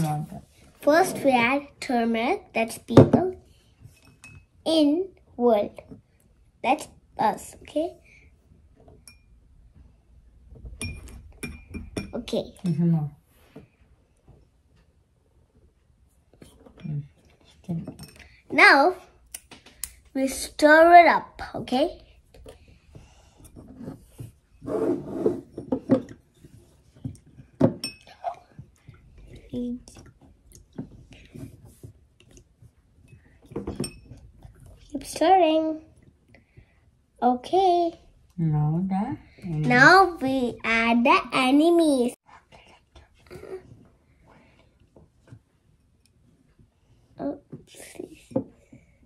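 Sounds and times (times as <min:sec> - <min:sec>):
metal spoon clinking on glass: 0:10.8 - 0:12.2.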